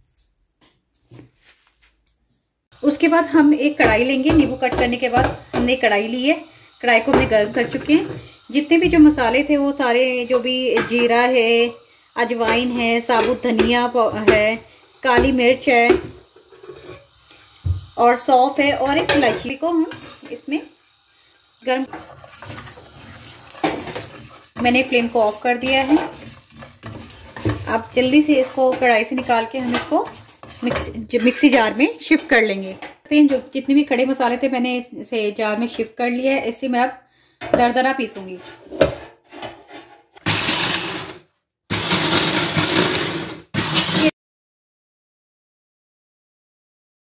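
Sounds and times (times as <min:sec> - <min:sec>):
spatula stirring spices in a pan: 0:02.8 - 0:33.0
electric chopper grinding spices: 0:40.3 - 0:44.1.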